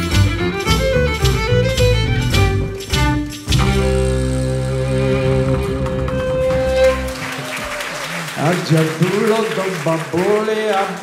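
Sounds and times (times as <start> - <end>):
fiddle note with vibrato: 0.0 - 7.4
sustained double bass: 0.0 - 7.5.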